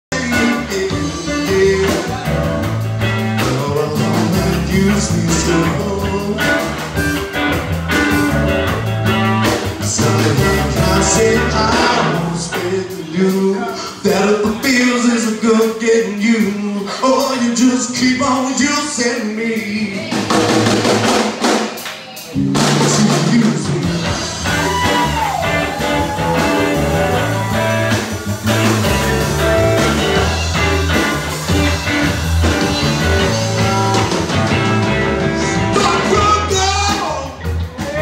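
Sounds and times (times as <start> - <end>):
bass line: 0.0 - 16.7, 22.4 - 38.0
drum kit beat: 0.1 - 38.0
electric guitars: 0.1 - 38.0
live blues band: 0.1 - 38.0.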